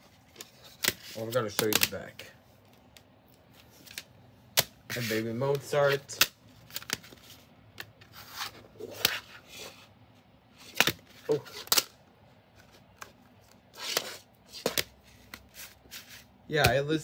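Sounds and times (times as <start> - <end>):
soft rubbing and sliding: 4.9 - 6.1, 7.1 - 10.0, 12.5 - 16.4.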